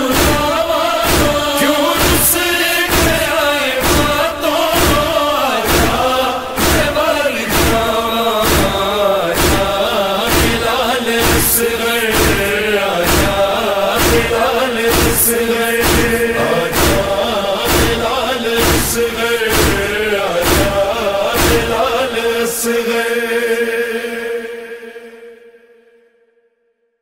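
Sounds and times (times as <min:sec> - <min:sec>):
steady drum beat: 0:00.0 - 0:22.2
man singing a lament: 0:00.0 - 0:25.2
sustained vocal drone: 0:00.0 - 0:25.9.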